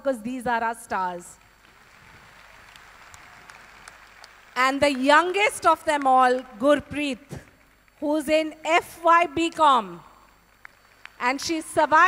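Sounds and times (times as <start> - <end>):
faint audience applause: 1.4 - 5.6, 10.2 - 11.2.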